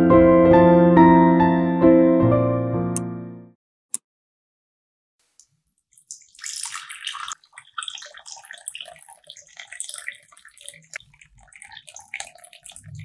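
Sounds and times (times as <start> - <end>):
water pouring into a teacup: 5.9 - 13.0.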